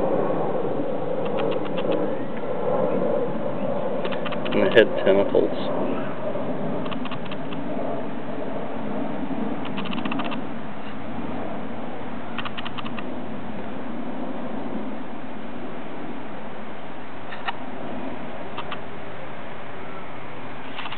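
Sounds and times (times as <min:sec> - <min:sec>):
steady background noise: 0:00.0 - 0:20.9
rapid sharp clicks: 0:01.2 - 0:02.0, 0:04.0 - 0:04.8, 0:06.8 - 0:07.6, 0:09.6 - 0:10.4, 0:12.4 - 0:13.1, 0:17.3 - 0:17.6, 0:18.6 - 0:18.8.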